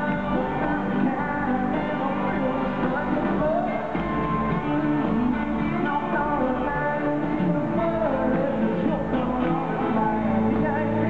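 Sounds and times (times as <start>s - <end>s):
live country band playing: 0.0s - 11.0s.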